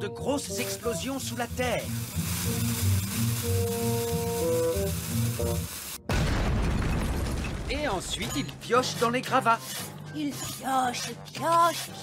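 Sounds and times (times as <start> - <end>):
tense background music: 0.1 - 12.0
fuse sizzling: 0.6 - 6.1.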